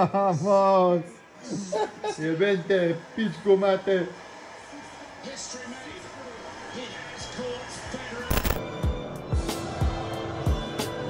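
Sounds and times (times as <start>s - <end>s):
sports commentary on tv: 0.0s - 8.6s
stadium crowd: 2.3s - 8.4s.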